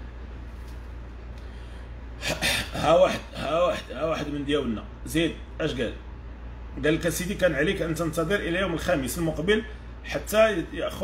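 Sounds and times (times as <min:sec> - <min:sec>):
low steady hum: 0:00.0 - 0:11.0
man speaking: 0:02.3 - 0:06.0, 0:06.7 - 0:11.0.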